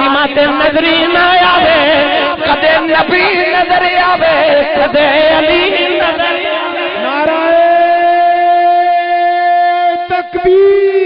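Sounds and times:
man singing long note: 0.0 - 11.0.

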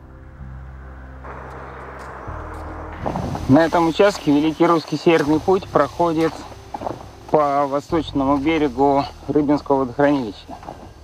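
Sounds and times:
low sustained background music: 0.0 - 11.0
steady rushing noise: 0.0 - 11.0.

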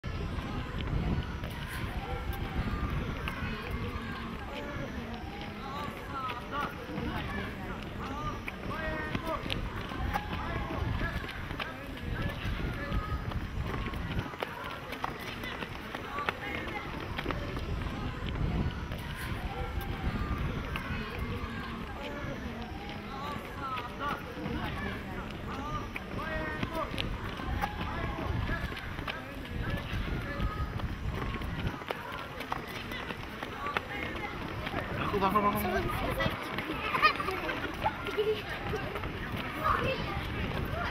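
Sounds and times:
wind on microphone: 0.0 - 4.4, 8.6 - 14.4, 16.9 - 21.8, 26.1 - 31.8, 37.9 - 40.9
children chattering: 0.0 - 40.9.

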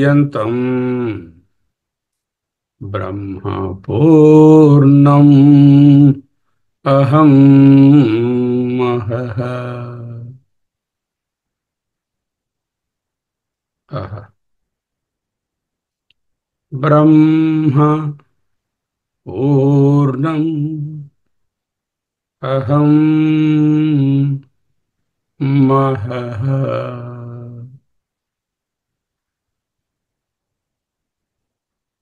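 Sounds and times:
man chanting a held tone: 0.0 - 1.5, 2.8 - 10.4, 13.9 - 14.4, 16.7 - 18.3, 19.3 - 21.2, 22.4 - 24.5, 25.4 - 27.8.

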